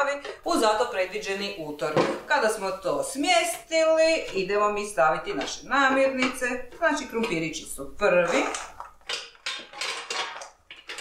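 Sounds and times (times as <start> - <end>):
frozen chips clattering into basket: 8.4 - 11.0.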